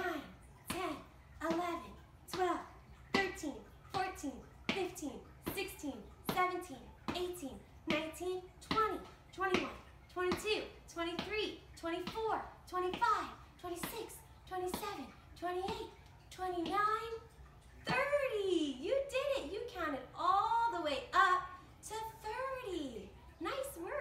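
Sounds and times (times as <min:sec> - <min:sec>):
woman counting aloud: 0:00.0 - 0:24.0.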